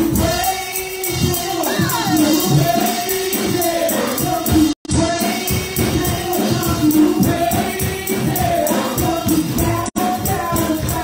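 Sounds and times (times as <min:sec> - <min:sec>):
gospel singing: 0:00.0 - 0:11.0
percussion beat: 0:00.0 - 0:11.0.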